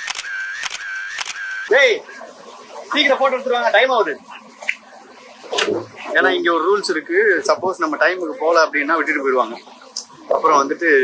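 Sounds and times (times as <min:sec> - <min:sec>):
camera shutter clicks: 0:00.0 - 0:01.7.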